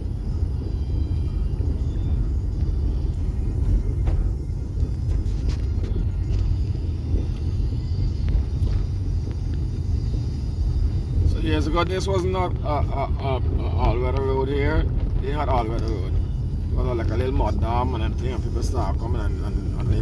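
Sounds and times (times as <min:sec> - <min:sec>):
car road rumble from inside cabin: 0:00.0 - 0:20.0.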